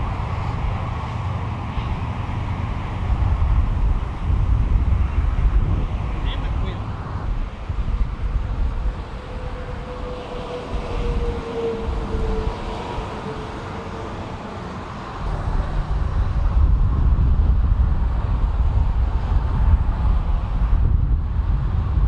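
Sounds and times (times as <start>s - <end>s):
tyre and engine rumble: 0.0s - 22.0s
vehicle passing hum: 0.0s - 22.0s.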